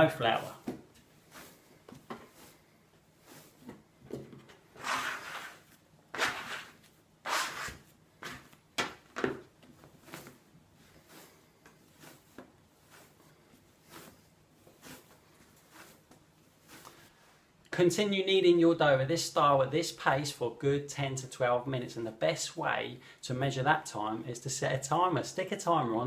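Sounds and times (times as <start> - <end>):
bread dough kneaded on wooden table: 0.0 - 17.6.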